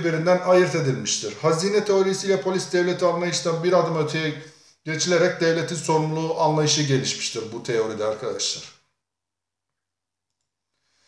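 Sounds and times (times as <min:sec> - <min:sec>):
very faint clicks: 0:09.7 - 0:10.6.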